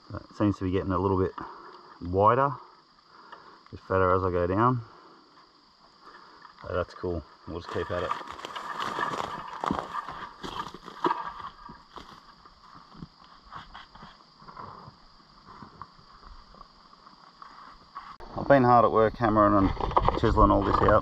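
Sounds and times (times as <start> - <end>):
insects chirring: 0.0 - 21.0
footsteps crunching on rubble: 7.7 - 13.2
stones knocking: 7.8 - 12.2.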